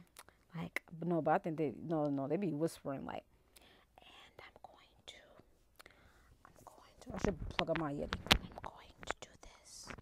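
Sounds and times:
woman whispering: 3.9s - 5.5s, 6.5s - 10.0s.

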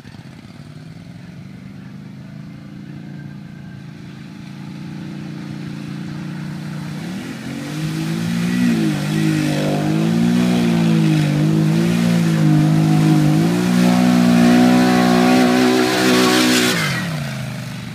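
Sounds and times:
quad bike engine revving: 0.0s - 17.9s
water and mud spraying: 4.6s - 17.9s.

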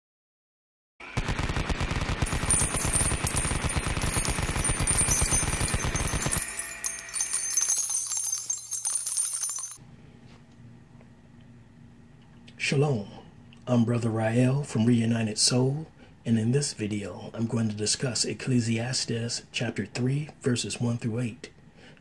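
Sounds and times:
machine-gun fire: 1.0s - 6.5s
clinking and crackle: 2.2s - 9.8s.

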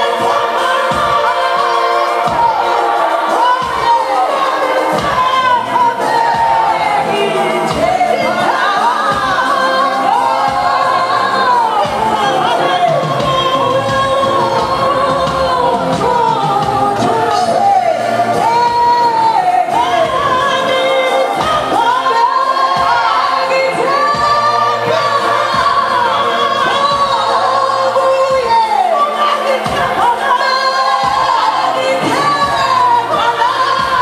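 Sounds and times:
group of voices singing: 0.0s - 34.0s.

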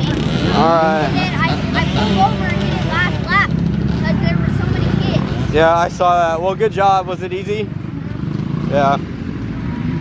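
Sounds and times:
scattered voices: 0.0s - 9.1s
dirt bike engines droning: 0.0s - 10.0s.

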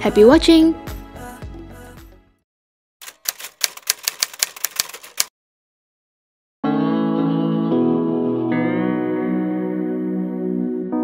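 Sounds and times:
sharp clicks: 3.0s - 5.3s.

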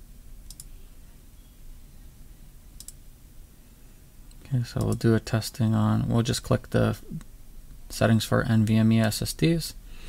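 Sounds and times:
faint low hum: 0.0s - 10.0s
computer mouse clicks: 0.4s - 0.7s, 2.8s - 3.0s.

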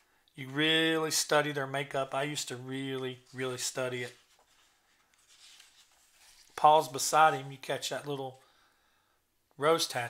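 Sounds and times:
hand brushing magazine page: 2.4s - 7.6s.

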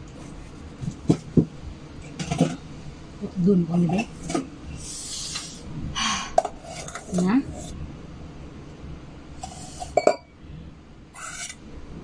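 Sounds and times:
pot scraping over plate: 6.4s - 7.8s, 9.4s - 10.3s, 11.1s - 11.6s.

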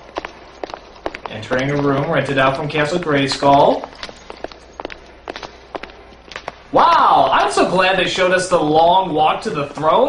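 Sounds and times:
footsteps on hard floor: 0.0s - 6.7s.

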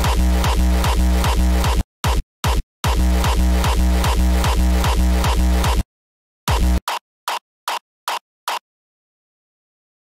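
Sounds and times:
deep bass: 0.0s - 1.8s, 2.9s - 5.8s
distorted kick drum: 0.0s - 5.8s, 6.5s - 6.8s.

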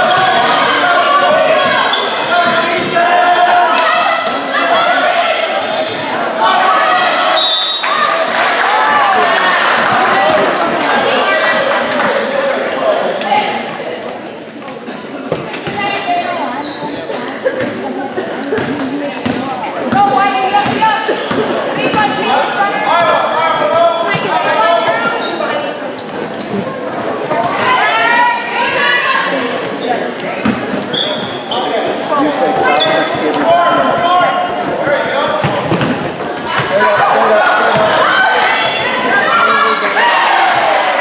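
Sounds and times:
sneakers squeaking: 0.0s - 3.0s, 3.6s - 8.1s, 15.2s - 17.9s, 18.5s - 40.0s
people calling out: 0.0s - 13.7s.

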